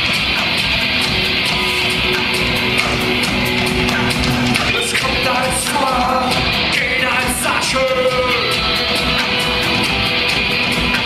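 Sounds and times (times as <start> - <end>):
live rock band playing: 0.0 - 11.0
man singing: 2.2 - 9.1.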